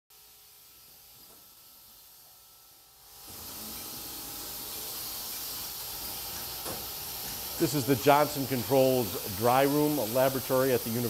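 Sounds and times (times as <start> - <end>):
steady room hiss: 0.1 - 11.0.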